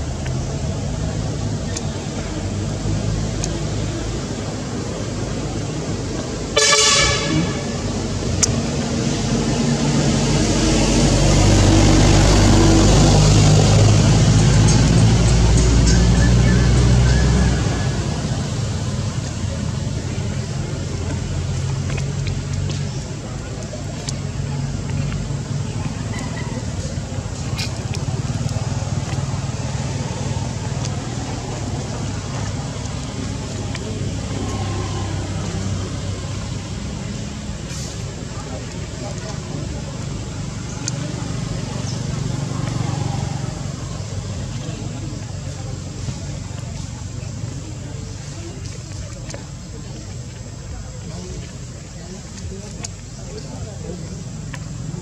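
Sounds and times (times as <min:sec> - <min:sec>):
background traffic: 0:00.0 - 0:55.0
vehicle engine running: 0:00.0 - 0:55.0
vehicle horn toot: 0:06.6 - 0:07.8.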